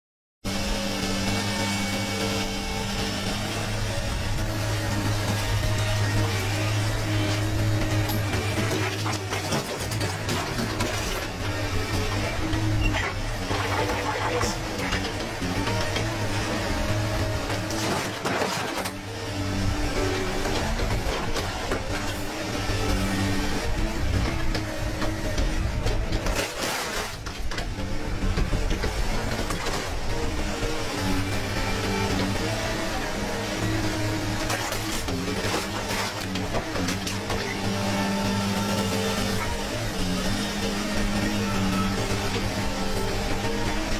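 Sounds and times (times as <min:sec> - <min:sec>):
excavator working: 0:00.4 - 0:43.9.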